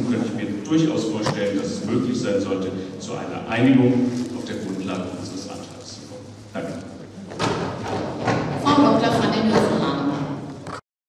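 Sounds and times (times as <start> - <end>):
voices in a hall: 0.0 - 10.8.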